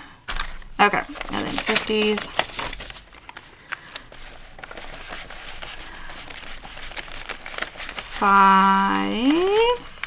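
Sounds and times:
paper bills rustling: 0.3s - 10.0s.

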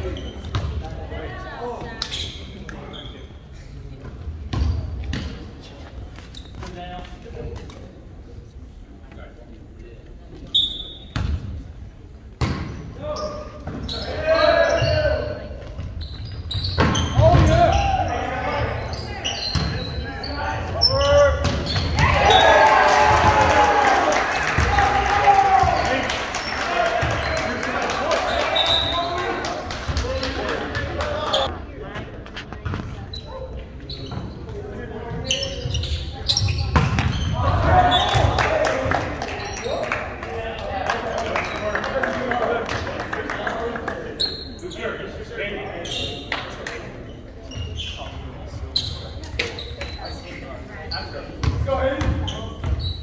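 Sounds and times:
players and spectators shouting: 14.0s - 15.4s, 20.1s - 31.5s, 37.3s - 39.1s
volleyball hits: 36.6s - 39.2s.

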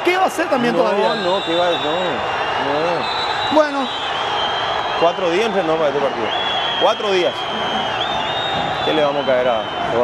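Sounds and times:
man speaking: 0.0s - 3.0s
stadium crowd noise: 0.0s - 10.0s.

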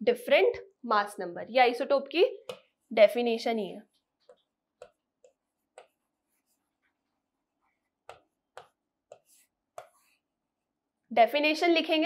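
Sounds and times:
pen tapping and writing on board: 2.4s - 2.8s, 4.2s - 10.3s.

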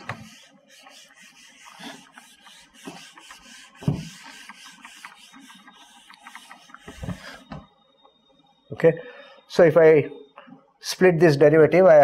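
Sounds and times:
eraser rubbing on whiteboard: 0.0s - 7.5s.

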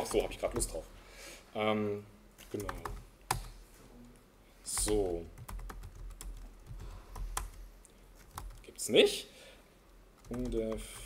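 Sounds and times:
keyboard typing: 0.0s - 0.8s, 2.5s - 3.5s, 4.8s - 7.6s, 8.2s - 8.7s, 10.2s - 11.0s.

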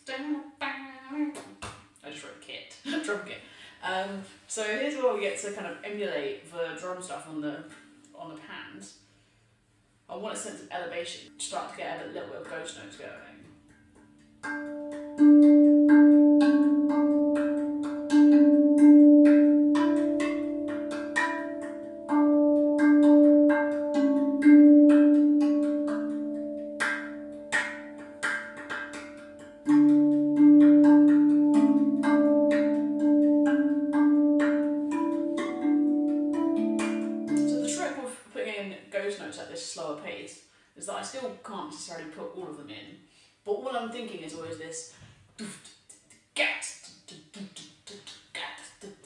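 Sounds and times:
steel tongue drum notes: 11.3s - 38.1s.

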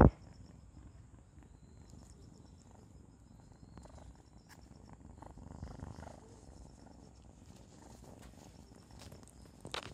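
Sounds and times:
kitten purring: 0.0s - 9.9s.

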